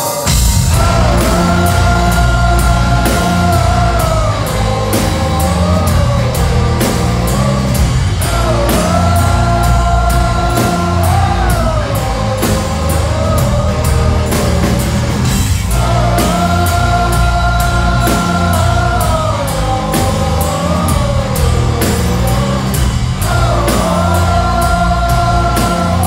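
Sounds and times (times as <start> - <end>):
live metal band playing: 0.0 - 26.0.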